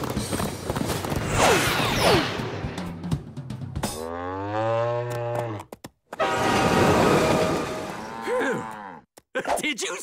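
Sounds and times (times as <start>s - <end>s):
cow mooing: 4.0s - 5.6s, 7.9s - 9.0s
train horn: 6.2s - 8.2s.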